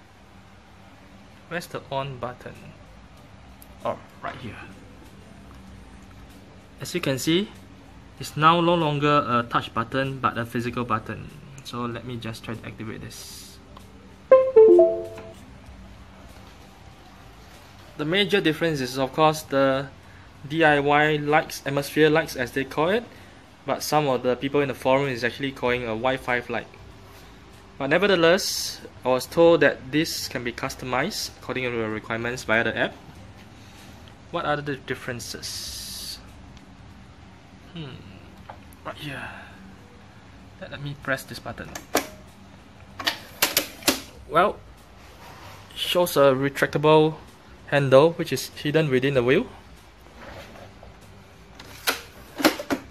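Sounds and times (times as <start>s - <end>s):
power-on chime melody: 14.3s - 15.4s.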